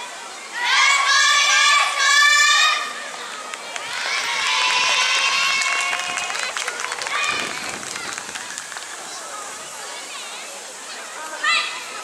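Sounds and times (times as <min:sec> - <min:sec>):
crowd voices: 0:00.0 - 0:12.0
high voices calling out: 0:03.8 - 0:09.9
sharp claps or clicks: 0:05.6 - 0:09.0.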